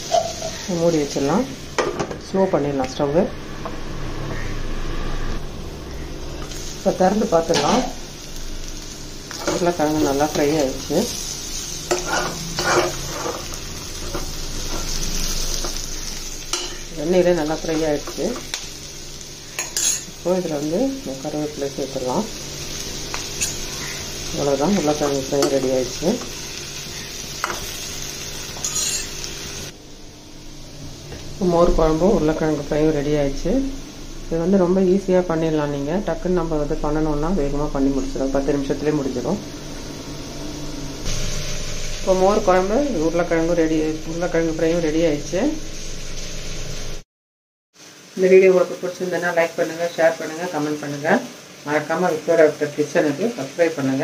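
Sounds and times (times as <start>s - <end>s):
metal spoon scraping a pan: 0.0s - 0.7s, 9.3s - 16.9s, 19.5s - 20.2s, 22.7s - 24.2s, 28.4s - 29.3s
potatoes sizzling in a pan: 0.0s - 2.6s, 5.7s - 29.8s, 31.0s - 47.0s, 47.8s - 54.0s.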